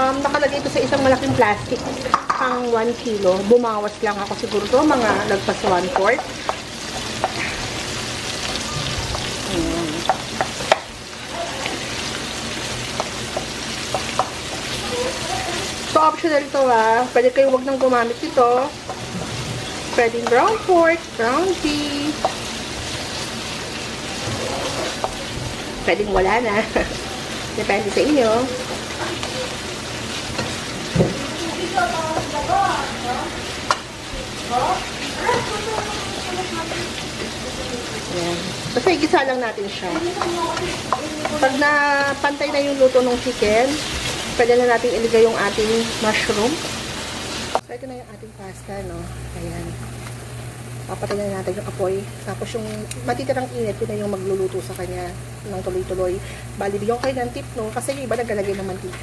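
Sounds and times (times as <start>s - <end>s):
meat sizzling in a wok: 0.0s - 59.0s
spatula clacking against pan: 10.0s - 10.9s, 12.9s - 14.8s, 39.8s - 42.7s
spatula scraping pan: 17.7s - 44.4s.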